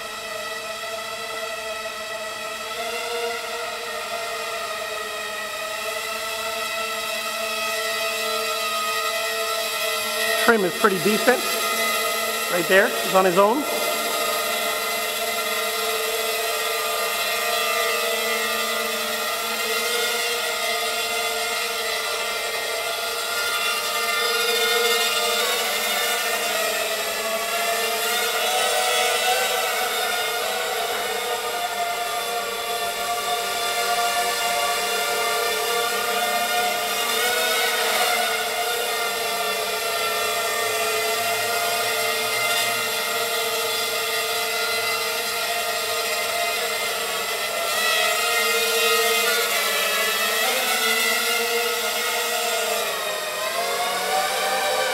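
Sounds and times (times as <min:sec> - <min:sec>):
quadcopter motors whining: 0:00.0 - 0:54.9.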